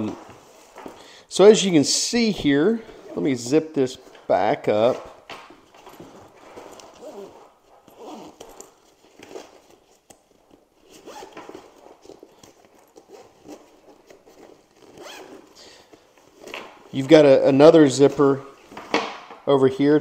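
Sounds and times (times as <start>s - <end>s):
backpack zipper being pulled: 6.0s - 9.8s, 10.8s - 15.6s.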